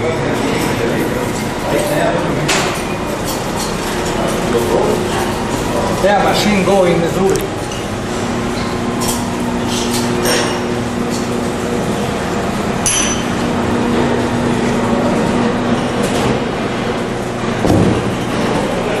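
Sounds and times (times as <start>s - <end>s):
machinery humming: 0.0s - 19.0s.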